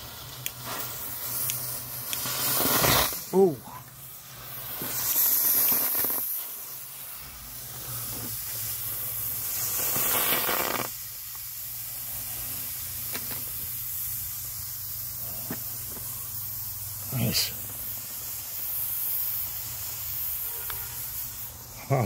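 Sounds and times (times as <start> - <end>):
smoke bombs hissing: 0.0 - 22.0.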